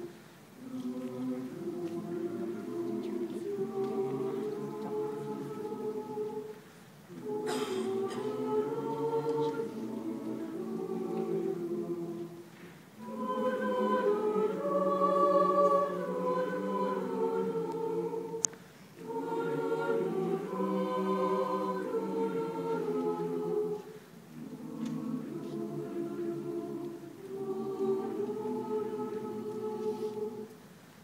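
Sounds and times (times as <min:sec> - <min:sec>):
mixed choir singing chords: 0:00.0 - 0:30.7.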